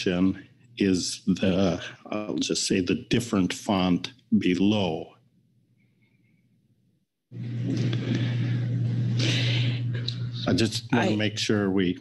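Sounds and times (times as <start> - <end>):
low hum: 4.4 - 11.9.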